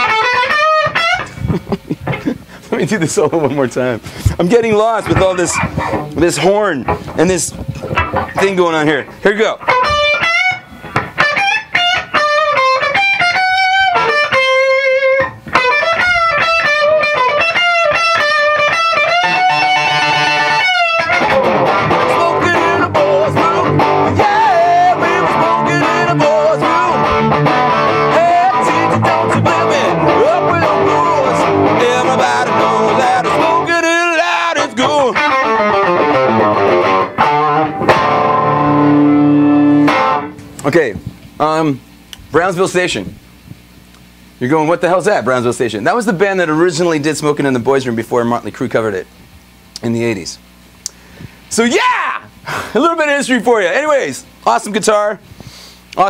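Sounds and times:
electric guitar solo: 0:00.0 - 0:01.4, 0:05.1 - 0:40.6
looped backing music: 0:04.3 - 0:41.4.

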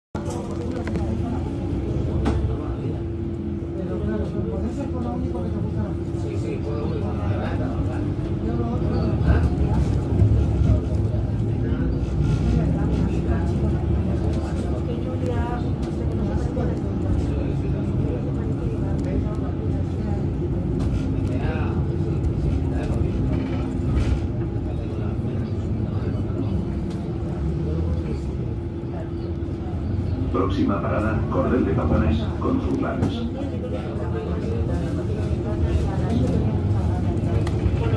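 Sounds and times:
bus engine rumbling: 0:00.1 - 0:37.9
faint voices talking: 0:00.2 - 0:37.9.

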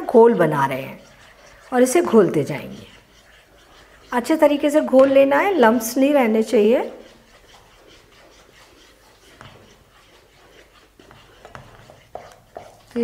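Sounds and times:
spatula swishing batter: 0:00.0 - 0:13.0.

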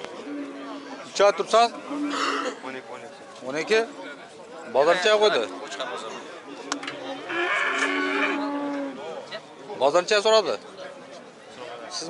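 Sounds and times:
cow mooing: 0:07.2 - 0:09.0.

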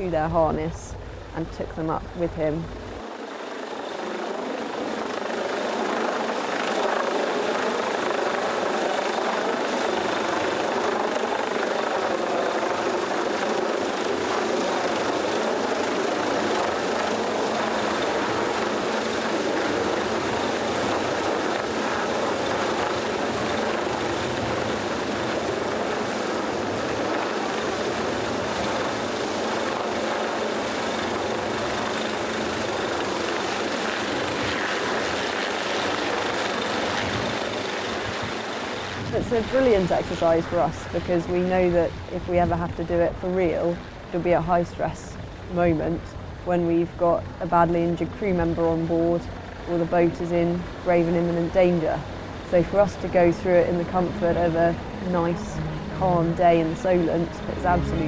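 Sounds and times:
helicopter rotor and engine hovering: 0:00.0 - 0:58.0.

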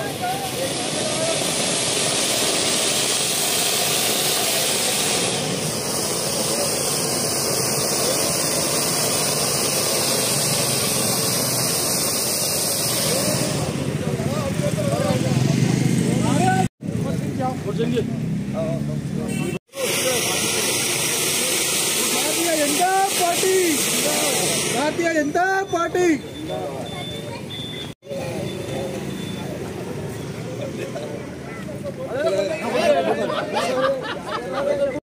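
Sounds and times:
fountain fireworks hissing: 0:00.0 - 0:18.3, 0:19.0 - 0:35.0
crowd chatter: 0:00.0 - 0:35.0.

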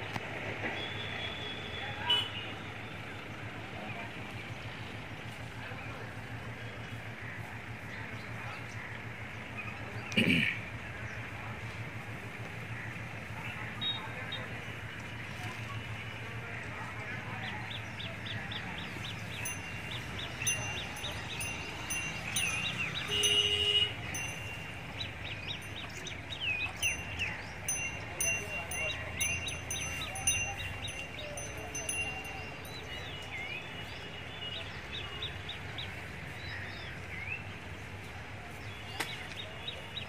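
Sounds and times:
birds chirping: 0:17.2 - 0:40.0.

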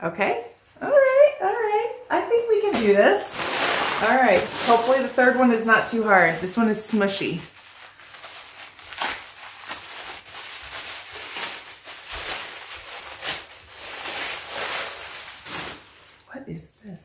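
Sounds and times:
wrapping rustling and crinkling: 0:00.3 - 0:17.0.

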